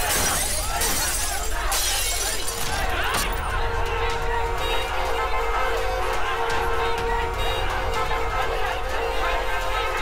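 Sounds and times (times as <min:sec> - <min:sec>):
window glass shattering: 0:00.0 - 0:03.5.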